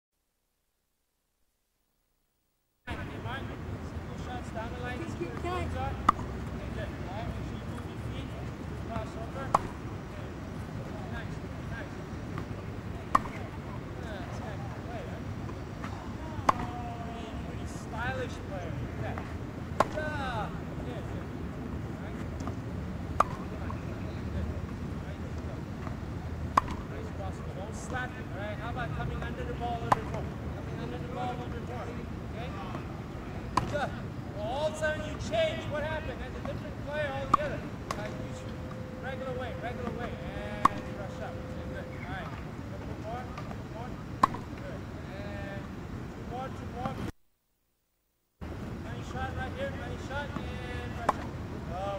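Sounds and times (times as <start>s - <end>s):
low background hum: 2.9s - 47.1s
tennis racket hitting ball: 9.0s - 9.8s, 13.1s - 13.5s, 16.4s - 16.8s, 23.2s - 23.5s, 26.5s - 26.9s, 40.6s - 41.0s, 44.2s - 44.5s
thin steady tone: 33.9s - 44.6s.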